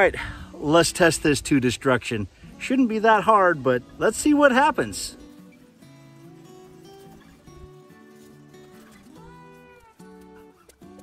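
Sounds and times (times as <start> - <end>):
instrumental music with held notes: 2.5 - 11.0.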